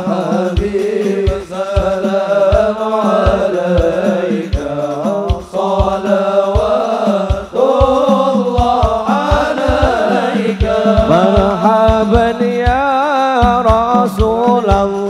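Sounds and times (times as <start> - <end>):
men singing in unison: 0.0 - 15.0
deep drum strokes: 2.6 - 12.7.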